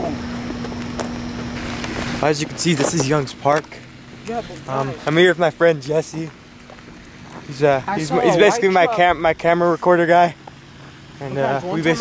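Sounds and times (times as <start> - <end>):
rumbling noise on microphone: 0.0 - 4.2
steady low hum: 0.0 - 12.0.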